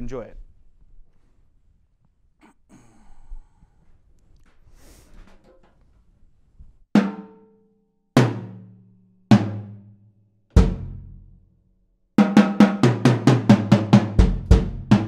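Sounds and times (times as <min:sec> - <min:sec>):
fast drum strokes: 0:12.2 - 0:15.0.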